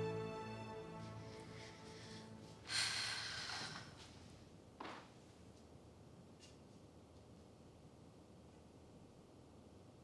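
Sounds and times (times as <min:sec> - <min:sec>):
background music: 0:00.0 - 0:03.5
person breathing out heavily: 0:01.1 - 0:04.2.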